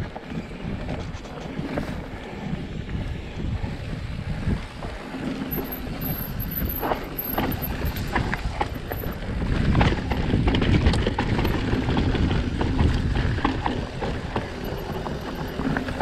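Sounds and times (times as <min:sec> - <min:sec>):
wind buffeting microphone: 0:00.0 - 0:16.0
tyres rumbling on dirt: 0:04.8 - 0:16.0
bike rattling clicks: 0:05.2 - 0:16.0.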